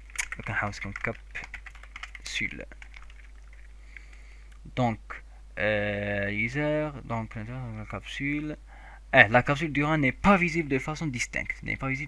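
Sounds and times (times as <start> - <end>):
computer keyboard typing: 0.0 - 4.2.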